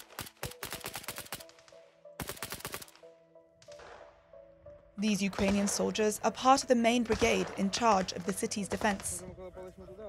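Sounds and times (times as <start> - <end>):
automatic gunfire: 0.0 - 3.0, 5.3 - 5.9
background music: 0.0 - 10.0.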